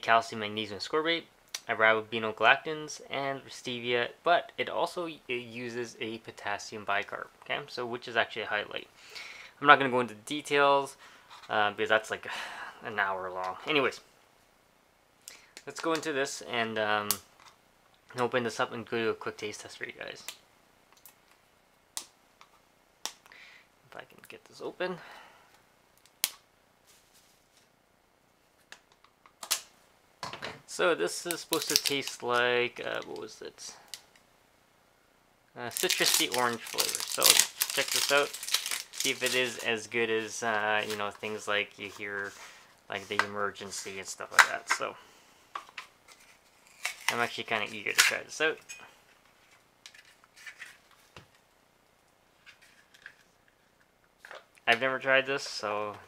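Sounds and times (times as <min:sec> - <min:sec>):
foil seal scratching and tearing: 0:35.8 - 0:39.6.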